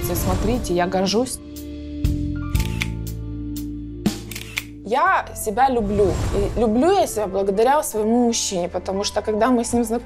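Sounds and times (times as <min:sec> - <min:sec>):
background music: 0:00.0 - 0:10.0
camera shutter clicks: 0:02.5 - 0:03.0, 0:04.2 - 0:04.8.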